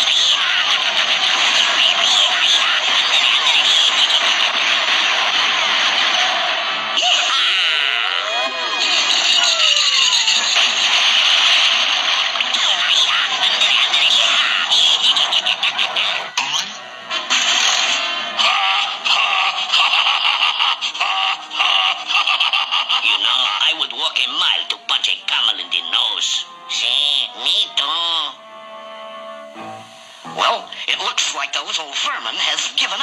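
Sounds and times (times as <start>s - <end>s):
cartoon character vocal noises: 1.8s - 4.1s, 7.0s - 10.6s, 12.5s - 16.8s.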